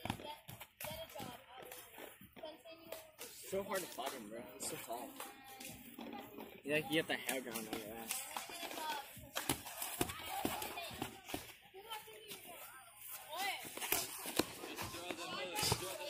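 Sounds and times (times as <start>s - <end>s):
voices talking: 0.0s - 16.0s.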